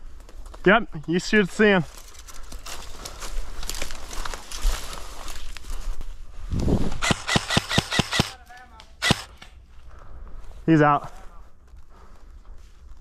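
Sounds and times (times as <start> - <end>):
brush and grass rustling: 0.0 - 13.0
airsoft rifle shots: 7.0 - 9.5.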